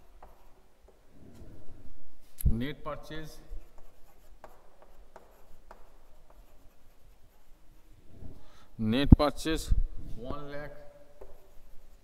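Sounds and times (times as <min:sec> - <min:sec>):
chalk tapping on board: 0:00.0 - 0:01.0, 0:03.6 - 0:07.5, 0:11.2 - 0:12.0
chalk scratching on blackboard: 0:03.4 - 0:07.9, 0:11.2 - 0:12.0.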